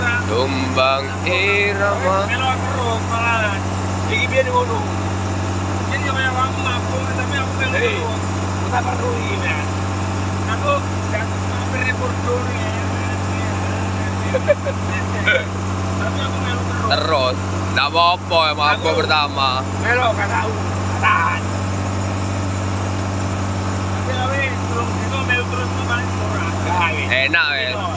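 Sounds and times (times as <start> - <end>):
boat engine droning: 0.0 - 27.9
water rushing along hull: 0.0 - 27.9.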